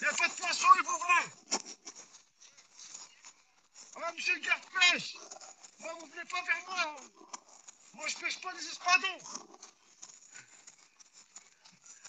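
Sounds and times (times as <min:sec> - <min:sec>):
faint clicks and rustles: 0:00.0 - 0:12.0.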